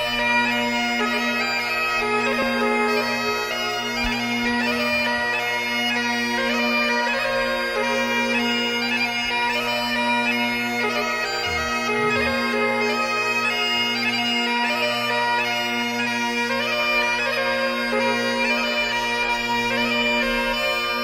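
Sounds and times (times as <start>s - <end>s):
bagpipe music: 0.0s - 21.0s.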